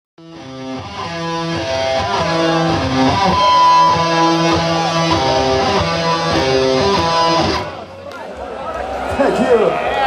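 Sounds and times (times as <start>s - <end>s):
electric guitar melody: 0.2s - 8.0s.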